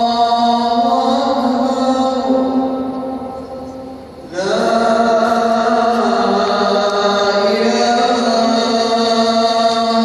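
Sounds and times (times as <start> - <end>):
man chanting over loudspeakers: 0.0 - 10.0.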